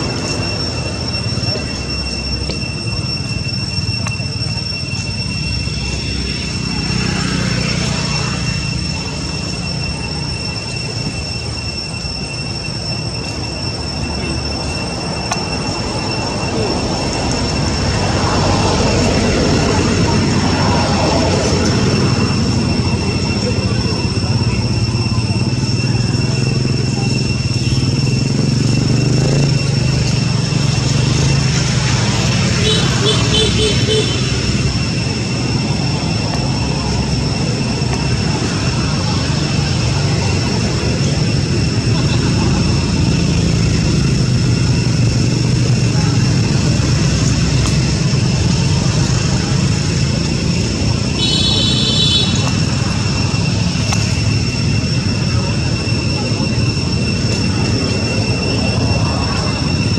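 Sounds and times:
constant high-pitched tones: 0:00.0 - 0:59.9.

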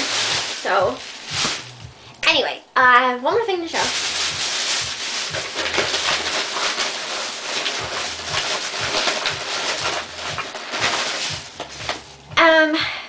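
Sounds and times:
shopping bag rustling and crinkling: 0:00.0 - 0:01.9, 0:03.6 - 0:12.3.

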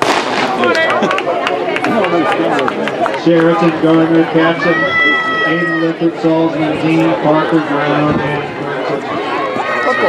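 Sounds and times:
starting gun shot: 0:00.0 - 0:00.7
spectators' voices: 0:00.0 - 0:10.0.

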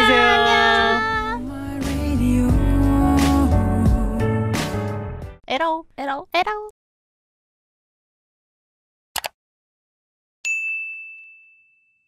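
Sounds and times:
bell ding: 0:10.4 - 0:12.0.

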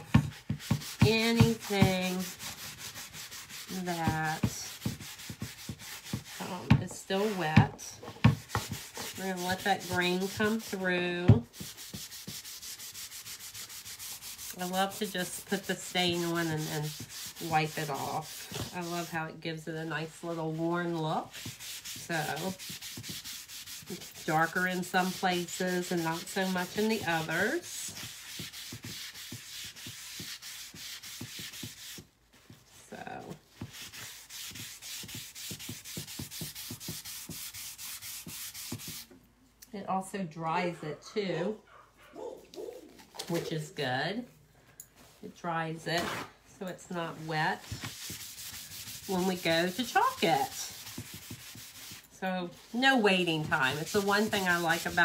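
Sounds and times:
paper towel rubbing wooden board: 0:00.0 - 0:19.2, 0:20.0 - 0:32.6, 0:33.2 - 0:39.1, 0:47.1 - 0:55.0.

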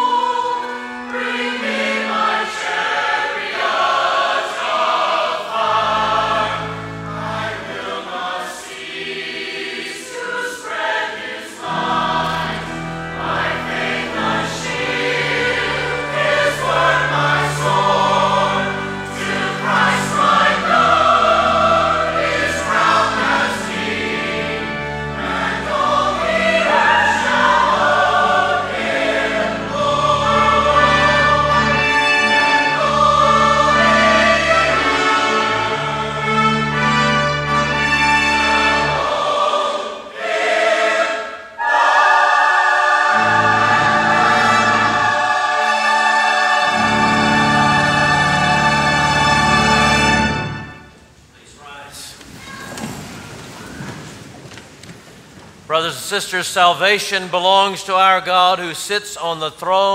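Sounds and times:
mixed choir singing: 0:00.0 - 0:50.9.

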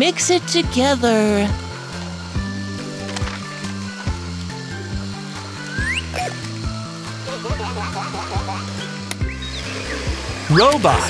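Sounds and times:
upbeat cartoon music: 0:00.0 - 0:11.0
chirpy sound effects: 0:04.7 - 0:06.2, 0:07.2 - 0:11.0
rising whistle sound effect: 0:05.7 - 0:06.1.

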